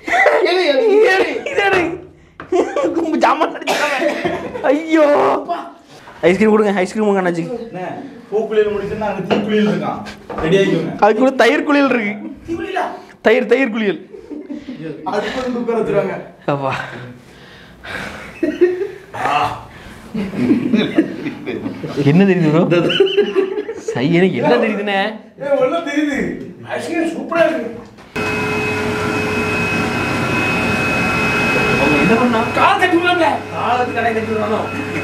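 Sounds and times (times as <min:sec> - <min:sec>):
high whine: 0:28.2 - 0:35.0
motor-driven blower whirring: 0:28.2 - 0:35.0.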